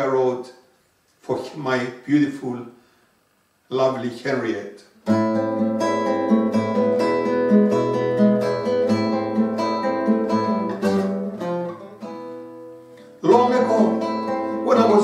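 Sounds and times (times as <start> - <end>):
nylon-string guitar playing: 5.0 - 15.0
man singing: 13.2 - 15.0.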